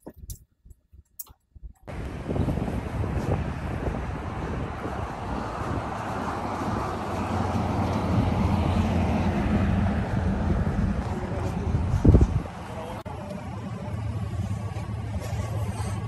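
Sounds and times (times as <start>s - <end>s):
wind on microphone: 1.5s - 12.7s
traffic engines rumbling: 1.9s - 16.0s.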